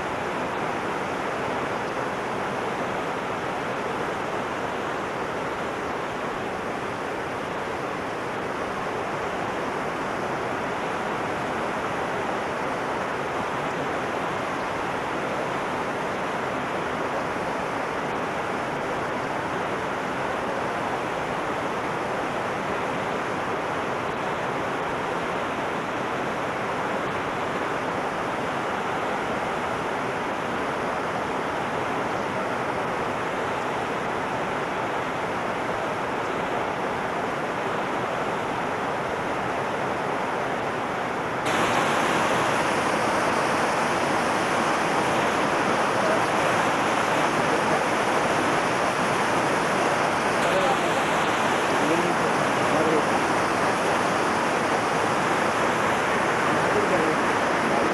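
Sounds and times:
waterfall pouring over rock: 41.4s - 57.9s.

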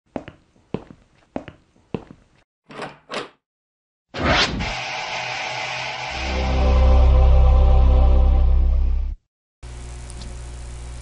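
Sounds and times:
swishing swells: 4.2s - 7.4s.

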